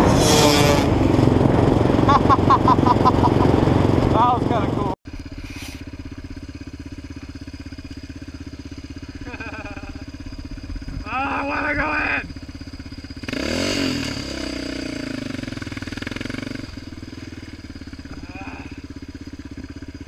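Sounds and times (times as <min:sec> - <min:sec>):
engine idling: 0:00.0 - 0:20.0.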